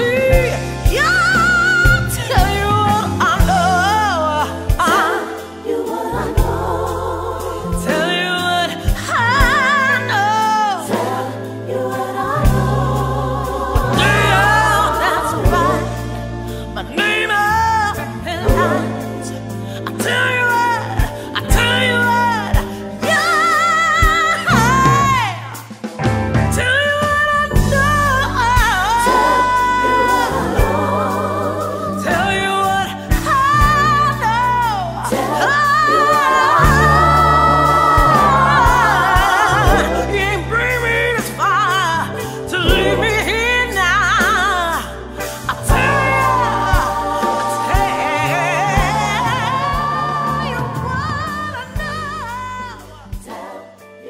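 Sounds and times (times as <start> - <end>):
woman singing: 0.0 - 6.8, 7.7 - 12.7, 13.8 - 25.7, 26.5 - 54.0
band with deep bass line: 0.0 - 54.0.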